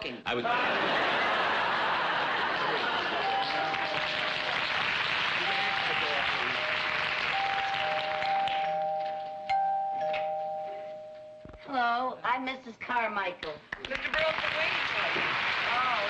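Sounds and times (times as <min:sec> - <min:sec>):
audience laughter: 0:00.3 - 0:04.8
two-tone door chime: 0:03.2 - 0:04.7, 0:05.4 - 0:11.7.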